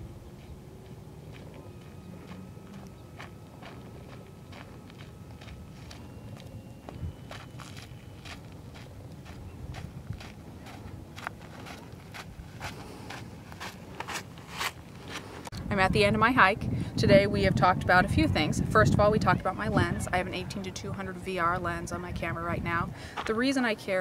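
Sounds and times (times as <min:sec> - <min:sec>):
footsteps on stony dirt trail: 0:00.4 - 0:15.5, 0:23.1 - 0:23.4.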